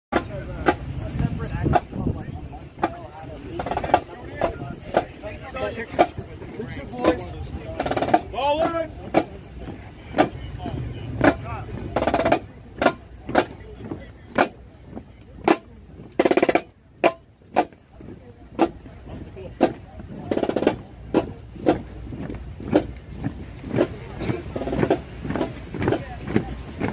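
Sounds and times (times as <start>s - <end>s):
crowd moving: 0.1s - 26.9s
group marching in step: 0.1s - 26.9s
shouted cadence calls: 6.9s - 9.2s, 23.8s - 26.9s.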